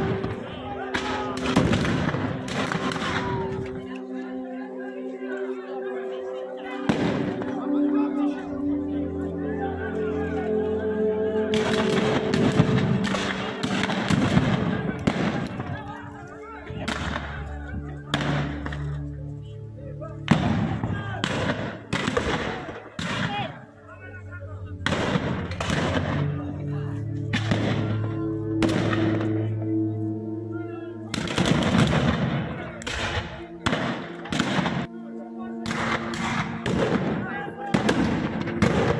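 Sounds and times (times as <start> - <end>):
background music: 0.0 - 38.9
rifle shots: 11.6 - 15.6, 20.3 - 23.3, 31.2 - 34.9, 35.7 - 38.9.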